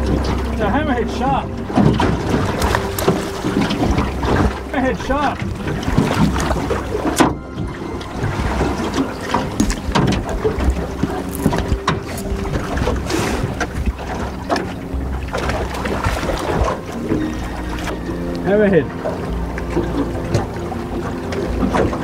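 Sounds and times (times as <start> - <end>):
water splashing against boat: 0.0 - 22.0.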